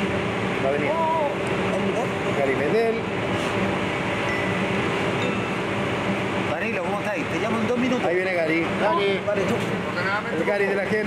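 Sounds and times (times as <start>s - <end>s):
mechanical hum and hiss: 0.0s - 11.0s.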